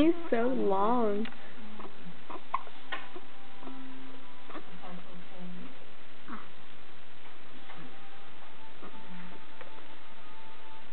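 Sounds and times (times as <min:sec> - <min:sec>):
steady background hiss: 0:00.0 - 0:10.9.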